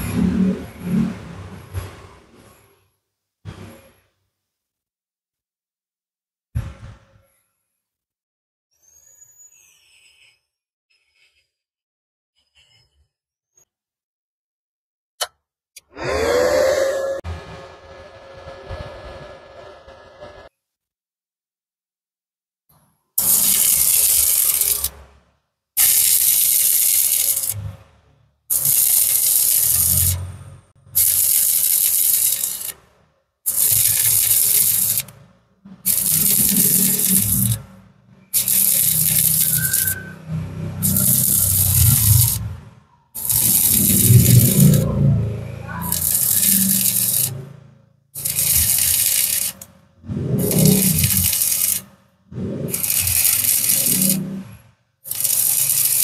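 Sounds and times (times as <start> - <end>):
welding arc crackling and sizzling: 23.2 - 25.2, 25.8 - 27.8, 28.5 - 45.0, 45.8 - 47.5, 48.2 - 56.0.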